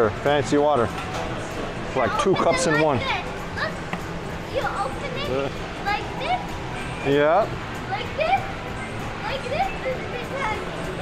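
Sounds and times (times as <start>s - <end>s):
busy indoor background noise: 0.0s - 11.0s.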